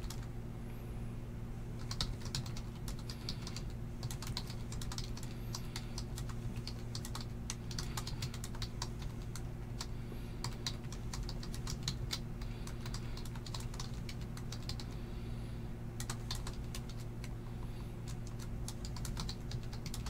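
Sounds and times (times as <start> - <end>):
computer keyboard typing: 0.0 - 0.3, 1.8 - 15.0, 16.0 - 17.4, 18.0 - 20.0
steady low hum: 0.0 - 20.0.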